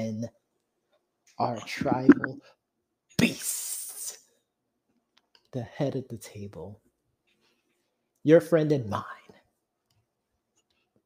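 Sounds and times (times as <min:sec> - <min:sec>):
person speaking: 0:01.4 - 0:02.4.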